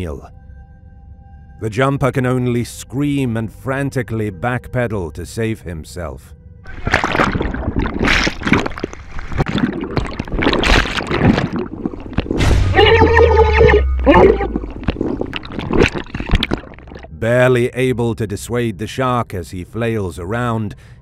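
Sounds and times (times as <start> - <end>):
water splashing and churning: 6.7 - 17.2.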